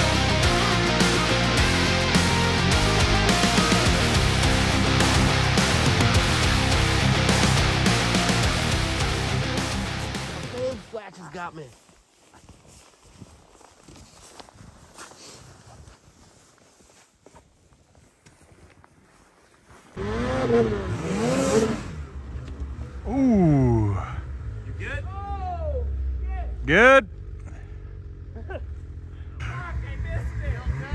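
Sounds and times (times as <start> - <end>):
snowmobile engine revving: 0.0 - 10.8, 20.0 - 30.9
heavy rock music: 0.0 - 11.0.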